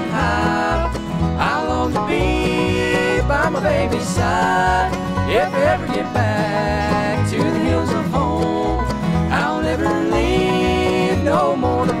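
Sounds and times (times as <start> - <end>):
bluegrass band playing: 0.0 - 12.0
voices singing in harmony: 0.0 - 12.0.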